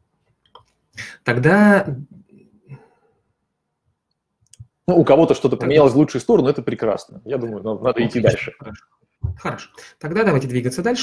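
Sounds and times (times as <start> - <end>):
man speaking: 1.0 - 2.3, 4.8 - 11.0.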